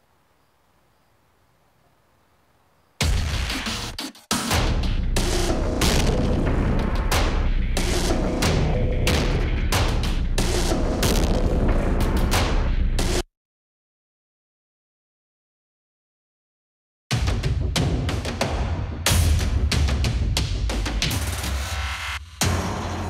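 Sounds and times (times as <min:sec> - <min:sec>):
industrial drum loop: 0:03.0 - 0:13.2, 0:17.1 - 0:23.0.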